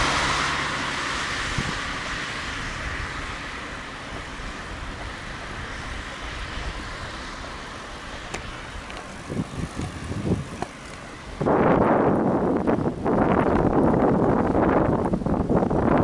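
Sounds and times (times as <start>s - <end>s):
road traffic noise: 0.0s - 16.0s
low thumps and knocks: 8.2s - 11.0s.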